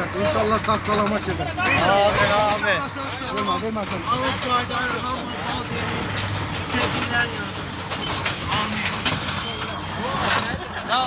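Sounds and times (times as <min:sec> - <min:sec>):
men talking: 0:00.0 - 0:11.0
road noise: 0:00.0 - 0:11.0
vehicle engine hum: 0:00.0 - 0:11.0.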